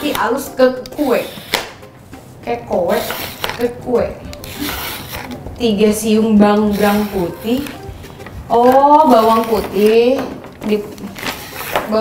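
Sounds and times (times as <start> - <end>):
peeler rasping on carrot: 0.8 - 1.6, 2.8 - 3.7, 4.3 - 5.4, 6.3 - 7.9, 8.6 - 10.0.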